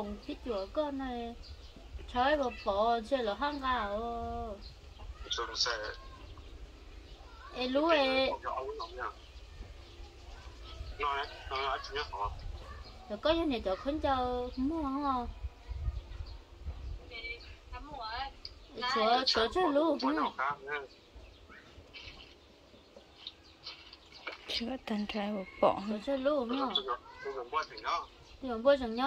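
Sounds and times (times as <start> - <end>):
faint bird chirps: 0.0 - 29.0.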